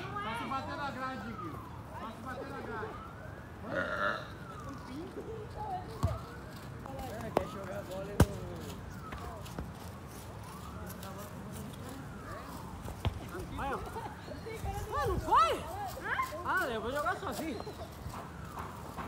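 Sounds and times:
siren wailing: 0.0 - 19.0
football being kicked: 8.1 - 8.4.

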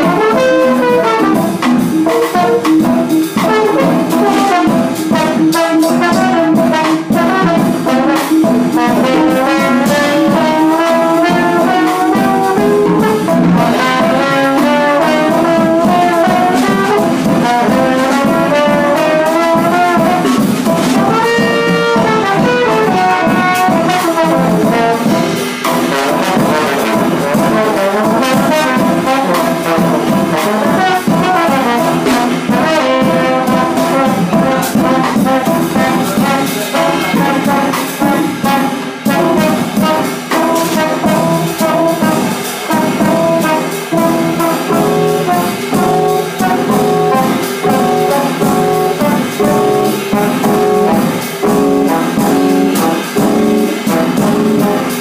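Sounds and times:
drums with cymbals: 0.0 - 55.0
trombone melody: 0.0 - 55.0.

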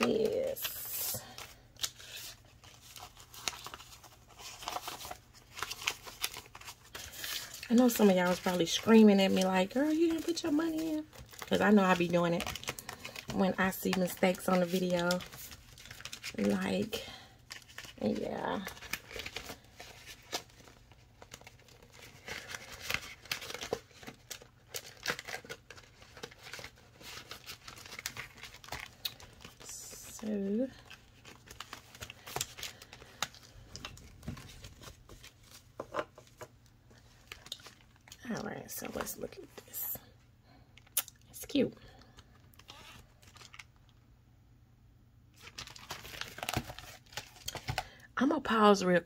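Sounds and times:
paper crinkling and rustling: 0.0 - 39.8, 41.9 - 44.0, 45.3 - 48.0.

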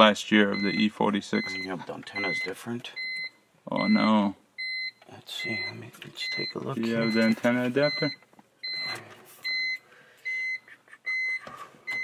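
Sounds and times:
car warning chime beeping: 0.0 - 12.0.

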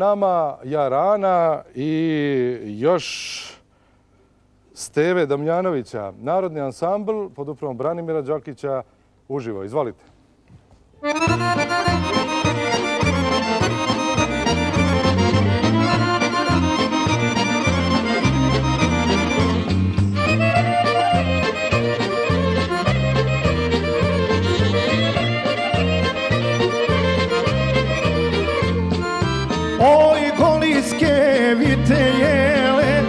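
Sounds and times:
accordions: 11.0 - 33.0
folk band playing: 11.0 - 33.0
violins: 11.0 - 33.0.

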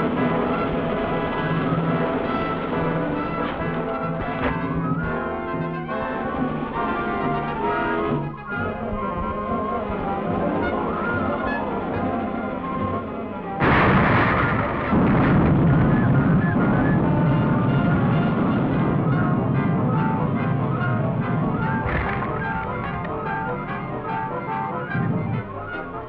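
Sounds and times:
dramatic orchestral music: 0.0 - 26.0
loud dynamite blast: 13.6 - 24.2.

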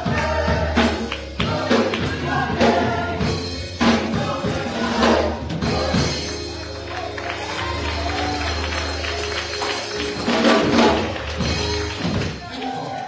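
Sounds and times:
congregation voices: 0.0 - 13.0
hand claps: 6.3 - 13.0.

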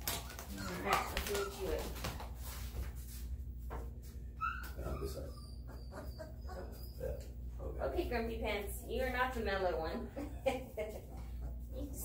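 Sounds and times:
puppies squeaking and whimpering: 0.2 - 1.9, 4.4 - 7.4.

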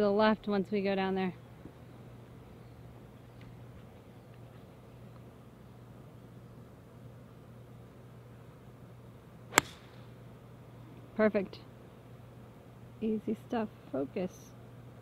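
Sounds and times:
faint steady low hum: 0.0 - 15.0
golf club striking ball: 9.5 - 10.2.

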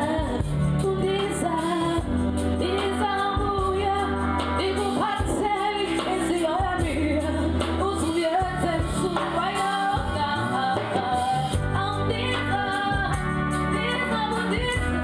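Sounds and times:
live band with bass and beat: 0.0 - 15.0
woman singing lead: 0.0 - 15.0.

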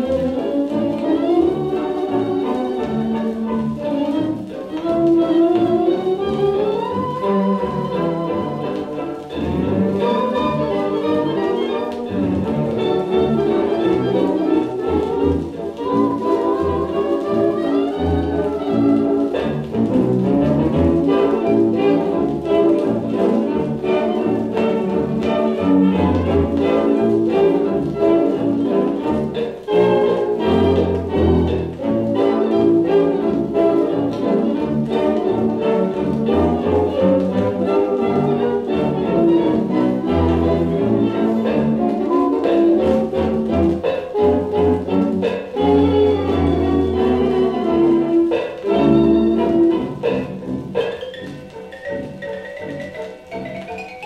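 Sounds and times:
dance band playing a foxtrot: 0.0 - 54.0.

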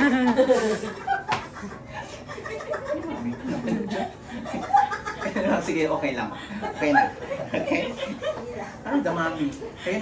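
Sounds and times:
people laughing and chuckling: 0.0 - 8.8.

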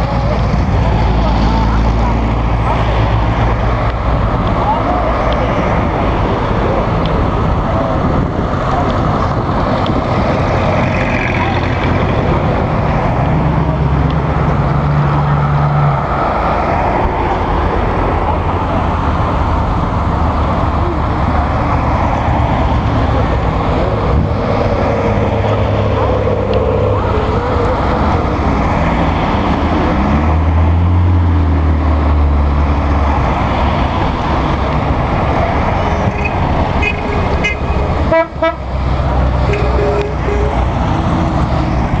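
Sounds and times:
cars driving past: 0.0 - 42.0
tyres on road: 0.0 - 42.0
car horns tooting: 36.1 - 38.8, 39.4 - 40.6.

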